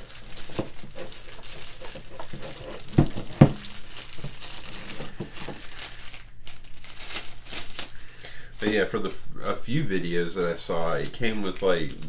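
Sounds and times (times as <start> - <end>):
plastic wrap crinkling: 0.0 - 8.9, 10.0 - 12.0.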